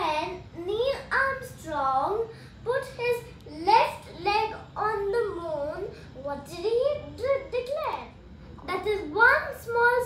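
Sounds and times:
boy talking: 0.0s - 10.0s.

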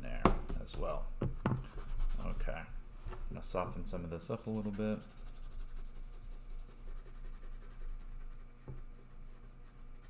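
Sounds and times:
pencil scratching on paper: 4.4s - 10.0s.

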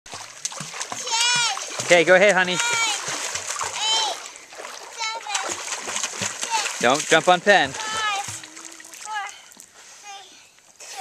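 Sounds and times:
water splashing: 0.1s - 11.0s
child calling: 1.0s - 1.6s, 3.8s - 4.2s, 5.0s - 5.5s, 7.8s - 9.4s.

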